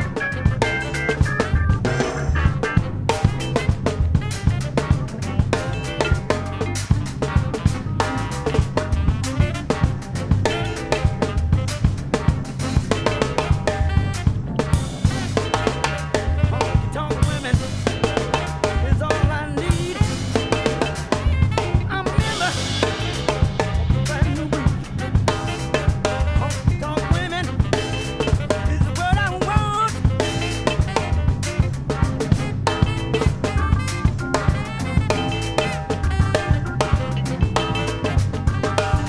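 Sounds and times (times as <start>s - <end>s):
drum kit funk groove: 0.0s - 39.0s
funk band backing track: 0.0s - 39.0s.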